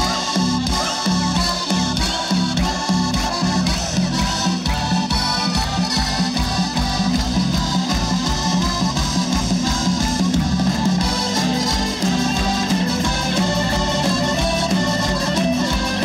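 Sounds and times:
accordion: 0.0s - 16.0s
bass guitar: 0.0s - 16.0s
drums: 0.0s - 16.0s
electric guitars: 0.0s - 16.0s.

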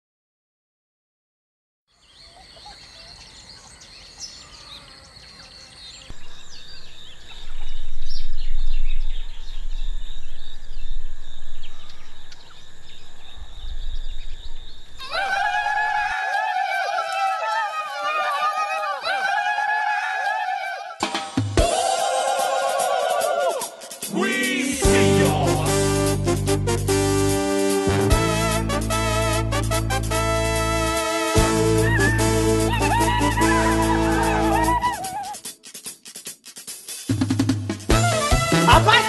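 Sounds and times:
birds chirping: 2.0s - 20.9s, 31.6s - 35.6s
deep rumble: 6.2s - 15.0s
crowd yelling: 15.0s - 25.9s, 31.7s - 35.4s.

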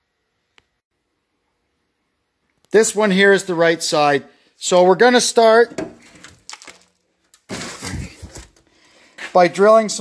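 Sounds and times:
handheld camera scuffing: 7.4s - 9.6s.

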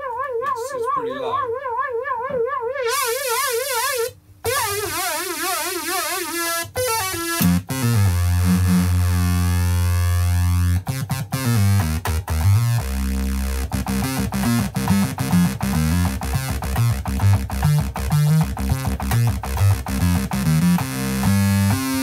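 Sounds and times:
analogue synthesizer notes: 0.0s - 22.0s.

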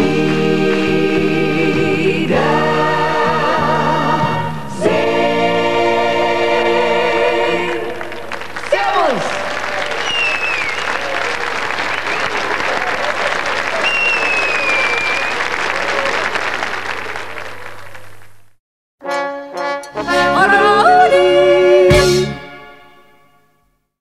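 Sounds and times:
choir singing final chord: 0.0s - 8.3s
audience applauding: 7.8s - 18.4s
high whistles: 9.6s - 11.3s, 13.7s - 15.6s.

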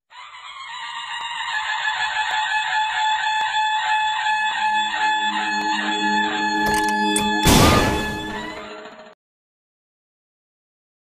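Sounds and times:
pulsing electronic chord: 4.6s - 8.9s.

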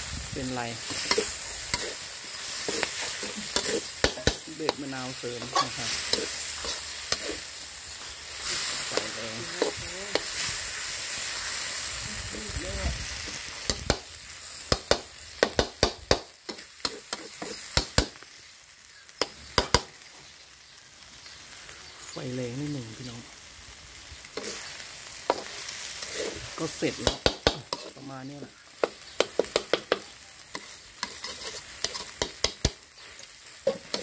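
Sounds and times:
noodles sizzling in a wok: 0.0s - 34.0s
spatula clacking on a wok: 2.6s - 4.8s, 13.7s - 14.1s, 14.7s - 18.2s, 19.2s - 19.9s, 25.2s - 25.6s, 27.0s - 28.0s, 28.8s - 34.0s.

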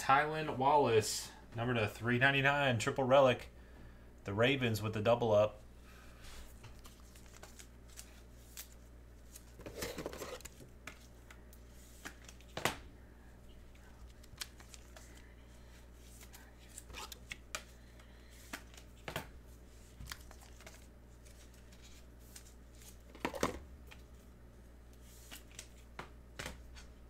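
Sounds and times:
packaging rustling: 6.7s - 10.7s.

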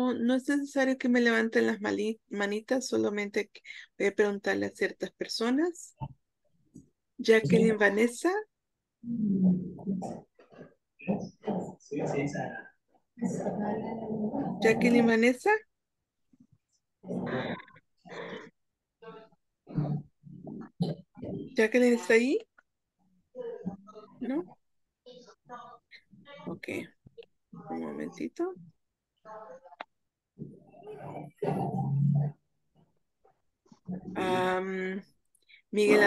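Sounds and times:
person saying um: 7.4s - 7.8s.

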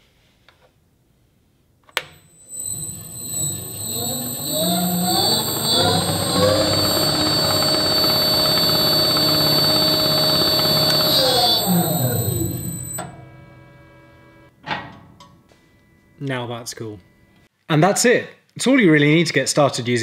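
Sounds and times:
high electrical whine: 2.0s - 14.5s
disc sander motor: 2.4s - 13.4s.

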